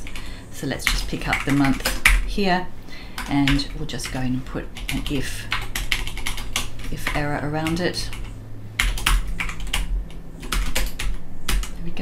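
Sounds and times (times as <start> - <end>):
typing on computer keyboard: 0.8 - 2.3, 3.2 - 11.8.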